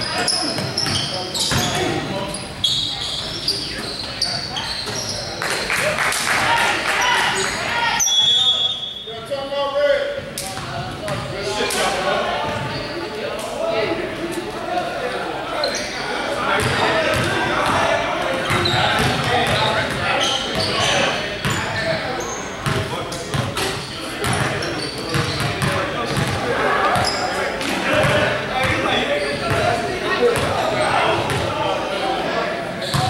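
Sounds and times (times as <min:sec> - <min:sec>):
sneakers squeaking: 0:00.0 - 0:05.8, 0:06.9 - 0:09.3, 0:12.4 - 0:13.2, 0:15.5 - 0:31.6, 0:32.8 - 0:33.0
people talking indistinctly: 0:00.0 - 0:33.0.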